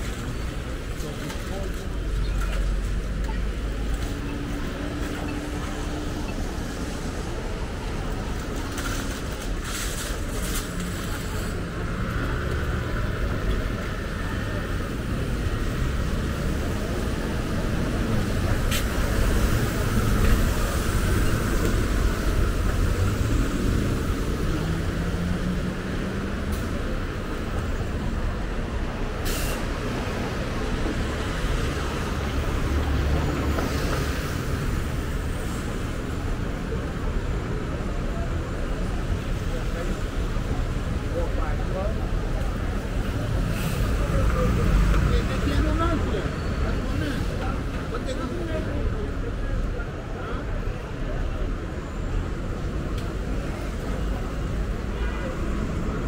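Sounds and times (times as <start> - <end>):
traffic on wet road: 0.0 - 56.0.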